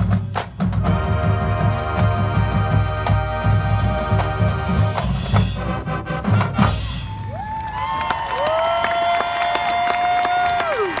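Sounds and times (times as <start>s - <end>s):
marching band brass chords: 0.0s - 7.4s
crowd cheering and clapping: 7.0s - 11.0s.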